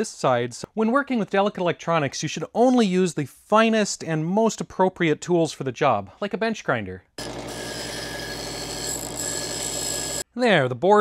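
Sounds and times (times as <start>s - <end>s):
bench grinder grinding: 7.2s - 10.2s.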